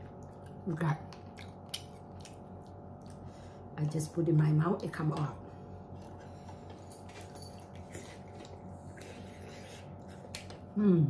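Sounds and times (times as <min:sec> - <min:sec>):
steady low hum: 0:00.0 - 0:11.0
person chewing: 0:00.2 - 0:03.3, 0:06.0 - 0:10.7.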